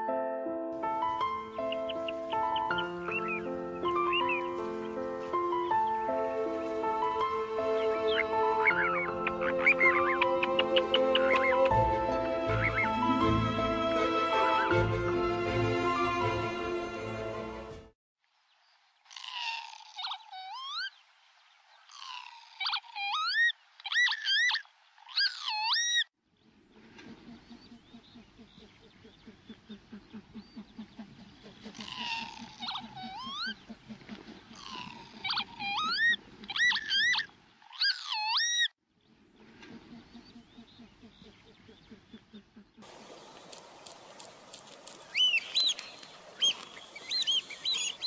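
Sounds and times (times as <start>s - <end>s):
lapwing calls: 7.7s - 11.9s, 19.1s - 21.0s, 21.8s - 26.1s, 27.1s - 38.7s, 43.8s - 48.0s.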